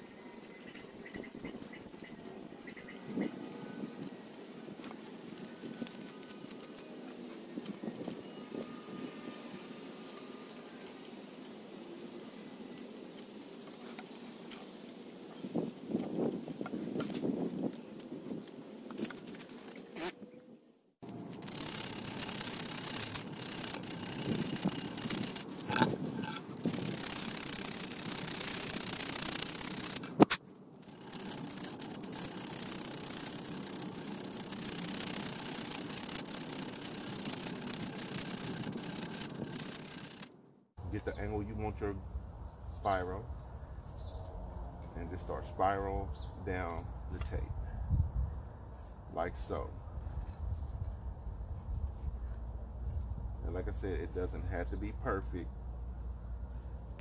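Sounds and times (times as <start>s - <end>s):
steady background noise: 21.0s - 41.2s.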